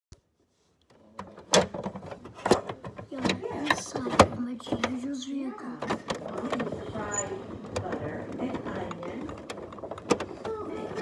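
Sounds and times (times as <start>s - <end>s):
sharp clicks and knocks: 0.8s - 5.2s, 5.8s - 11.0s.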